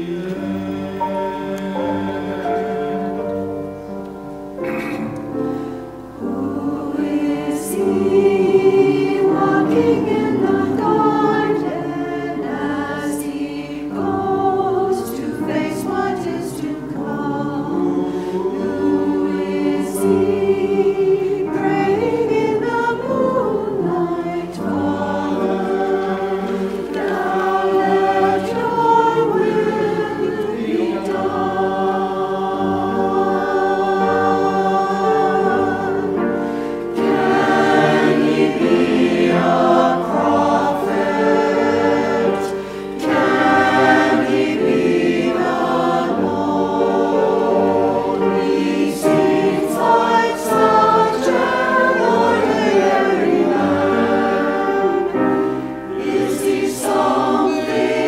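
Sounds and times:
choir singing in harmony: 0.0 - 58.0
piano accompaniment: 0.0 - 58.0.

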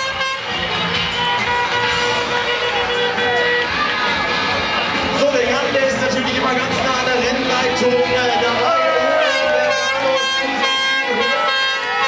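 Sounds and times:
air horns blowing: 0.0 - 4.0, 8.8 - 12.0.

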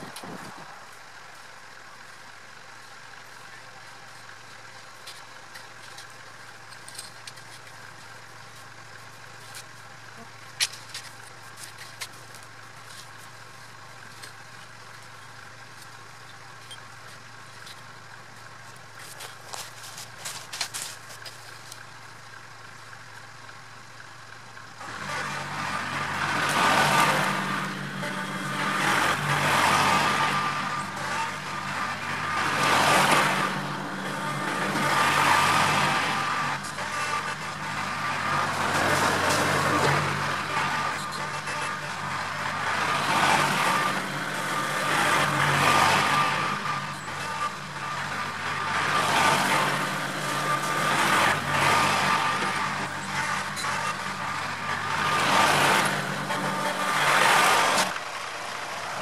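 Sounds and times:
tractor engine running: 0.0 - 59.0.

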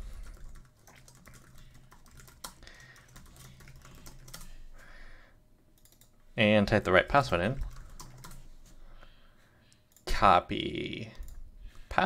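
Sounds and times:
low steady hum: 0.0 - 12.0
computer keyboard keystrokes: 0.2 - 4.5, 5.8 - 6.1, 7.5 - 8.4.

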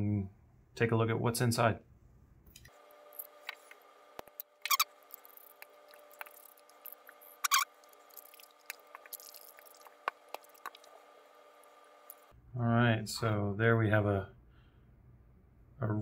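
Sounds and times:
brief squeaks: 7.4 - 7.7.

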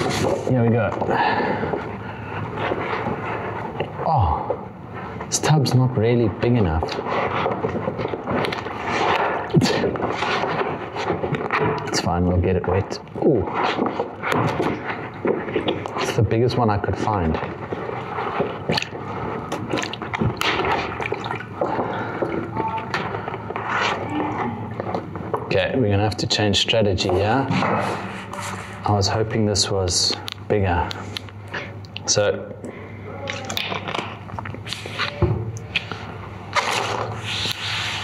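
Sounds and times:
stiff paper rustling: 0.0 - 0.6, 6.8 - 25.4, 35.8 - 38.0
water sloshing in plastic tub: 17.3 - 25.6.

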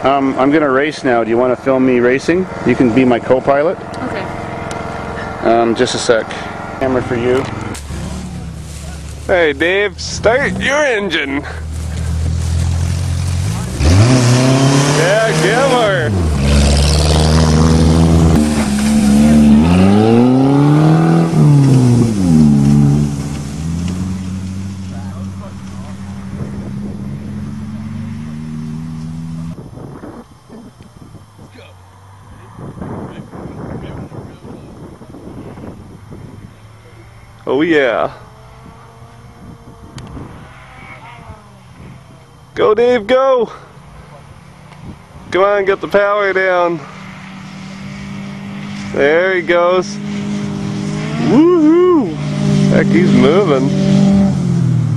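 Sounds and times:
car accelerating away: 0.0 - 42.6, 43.6 - 54.9
car engine idling: 0.0 - 46.7.

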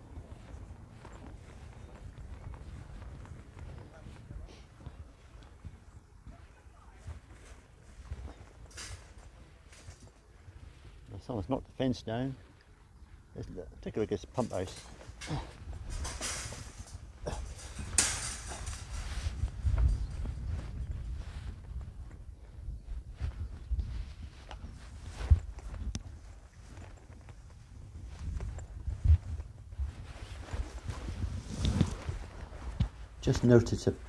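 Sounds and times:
footsteps through grass: 0.0 - 11.2, 14.2 - 34.0.

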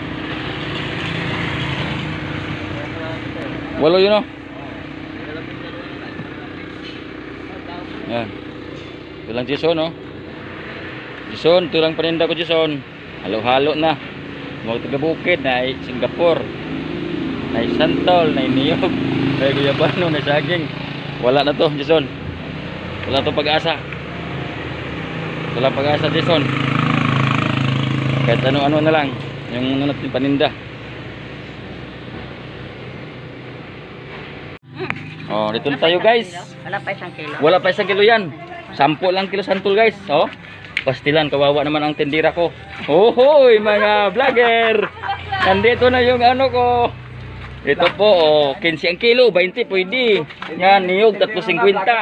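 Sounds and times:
vehicle engine running: 0.0 - 52.0.

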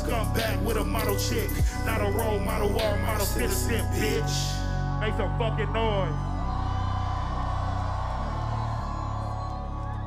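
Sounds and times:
deep bass notes: 0.0 - 10.0.

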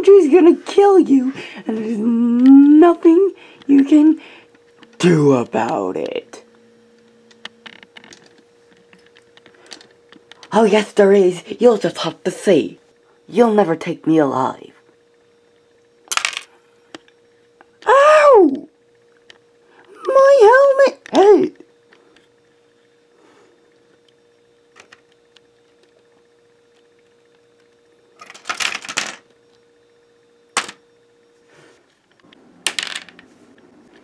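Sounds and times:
faint steady hum: 0.0 - 34.0
person's high-pitched cry: 17.8 - 18.7.

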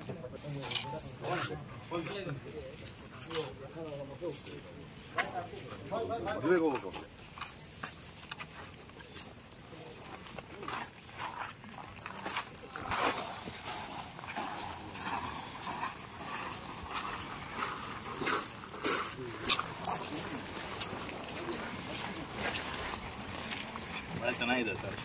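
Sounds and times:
murmuring voices: 16.4 - 25.0.

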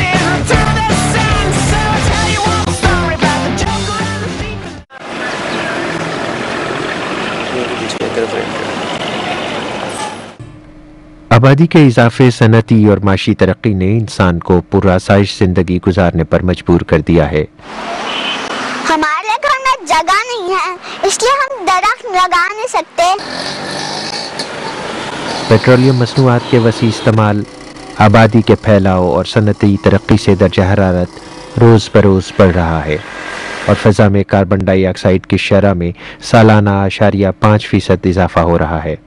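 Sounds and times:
traffic noise: 4.9 - 10.4, 17.5 - 34.2
bus engines running: 5.0 - 10.4, 17.6 - 33.8
vehicle engine running: 24.5 - 33.8.

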